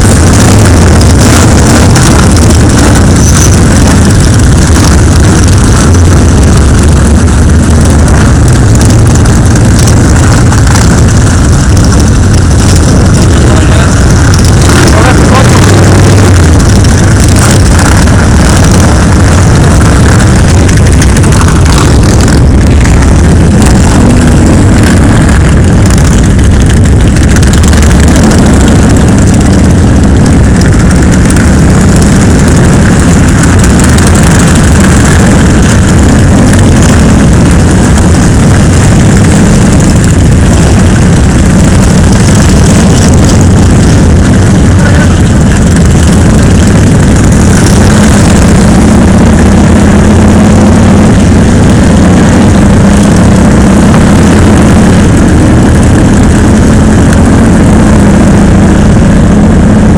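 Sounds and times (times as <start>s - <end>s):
motorcycle engines rumbling: 0.0s - 59.9s.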